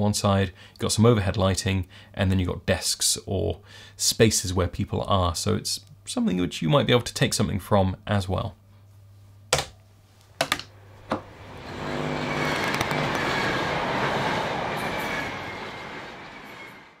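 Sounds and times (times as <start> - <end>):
noisy rumble: 10.7 - 16.3.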